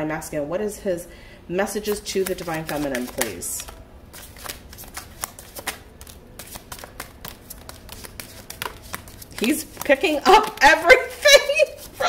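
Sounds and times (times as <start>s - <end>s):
cards being shuffled: 1.9s - 12.0s.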